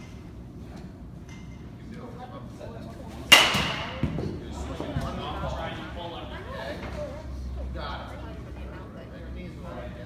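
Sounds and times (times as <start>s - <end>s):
metal bat hitting ball: 3.3s - 4.0s.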